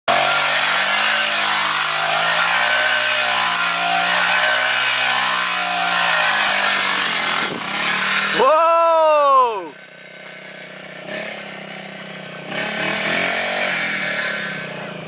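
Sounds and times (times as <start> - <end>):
dirt bike engine revving: 0.1 - 15.0.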